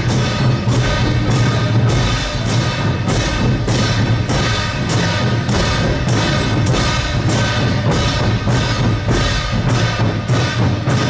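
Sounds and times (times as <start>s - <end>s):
drum beating steadily: 0.0s - 11.0s
sustained pitched instruments: 0.0s - 11.0s.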